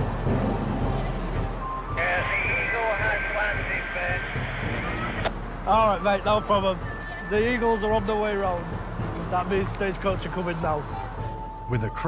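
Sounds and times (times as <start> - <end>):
bus engine rumble: 0.0 - 11.6
traffic: 0.0 - 12.0
voice over two-way radio: 2.0 - 5.0.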